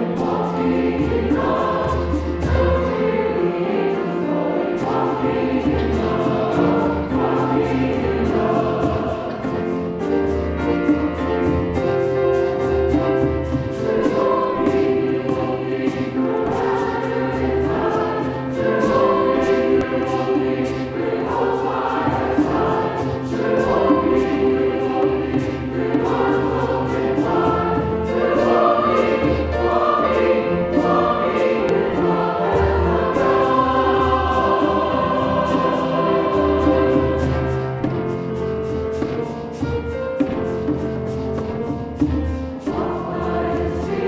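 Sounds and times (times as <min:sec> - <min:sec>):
choir singing a hymn: 0:00.0 - 0:44.0
piano accompaniment: 0:00.0 - 0:44.0.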